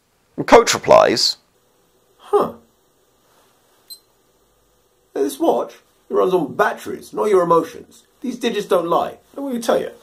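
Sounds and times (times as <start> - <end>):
stopwatch beep: 3.9 - 4.1.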